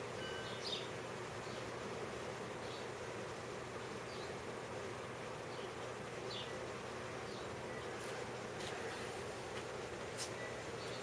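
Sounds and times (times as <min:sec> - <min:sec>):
computer fans whirring: 0:00.0 - 0:11.0
faint high chirps: 0:00.2 - 0:01.7.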